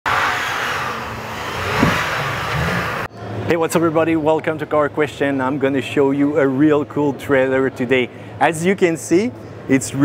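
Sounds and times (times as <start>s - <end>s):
car driving through deep snow: 0.1s - 3.1s
engine revving: 0.1s - 3.1s.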